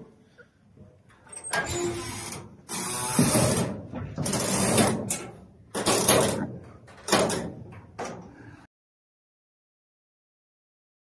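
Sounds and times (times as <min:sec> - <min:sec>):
door being moved: 0:01.3 - 0:08.3.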